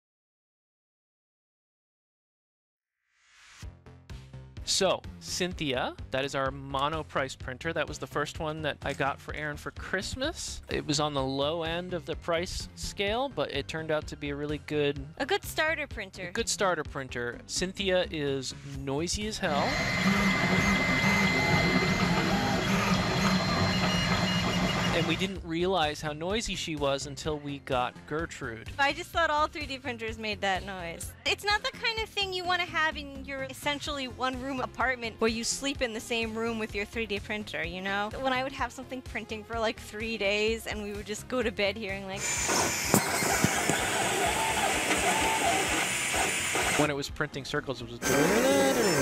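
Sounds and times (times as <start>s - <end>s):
fan hum: 19.5s - 25.2s, 42.2s - 46.9s
stepper motors singing: 19.5s - 25.3s, 42.2s - 46.9s, 48.0s - 49.0s.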